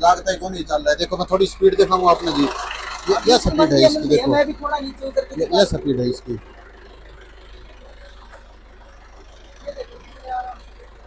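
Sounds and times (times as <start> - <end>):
tractor diesel engine idling: 0.0 - 11.0.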